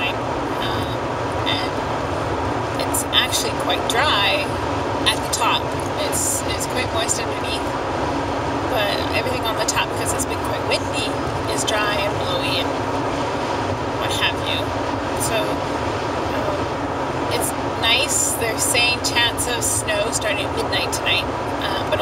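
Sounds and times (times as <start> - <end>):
person talking: 0.0 - 1.7, 2.8 - 4.5, 5.1 - 7.6, 8.7 - 12.6, 14.0 - 15.6, 16.3 - 16.7, 17.3 - 22.0
car road and engine noise: 0.0 - 22.0.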